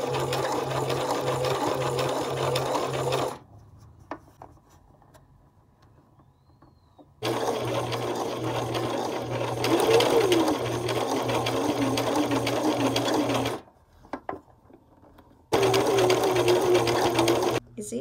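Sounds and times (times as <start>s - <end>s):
sewing machine stitching: 0.0s - 3.4s, 7.2s - 13.7s, 15.5s - 17.6s.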